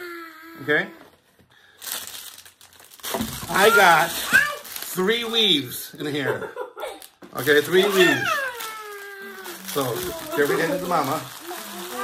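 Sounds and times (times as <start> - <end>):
plastic packaging crinkling: 1.6 - 5.7, 6.9 - 12.0.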